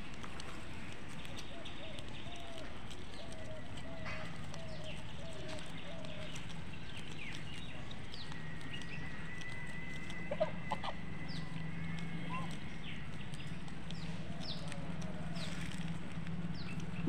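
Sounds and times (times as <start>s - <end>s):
low hum: 0.0s - 17.0s
fowl calls: 10.1s - 11.1s.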